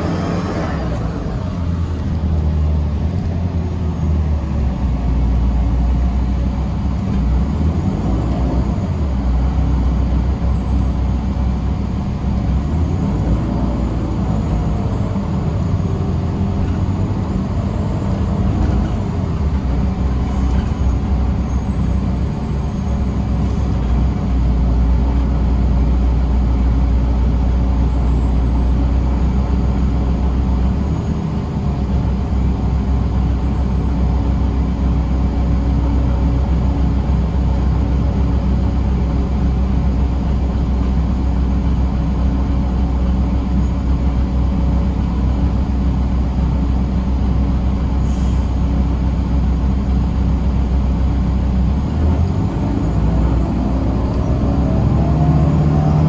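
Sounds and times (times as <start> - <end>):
bus engine rumble: 0.0 - 56.0
road and tyre noise: 0.0 - 56.0.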